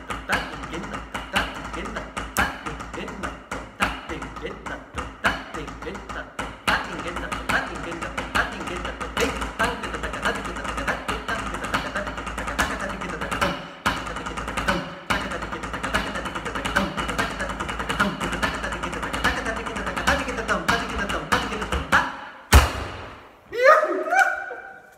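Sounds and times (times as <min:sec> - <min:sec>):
rapid spoken rhythm syllables: 0:00.0 - 0:22.5.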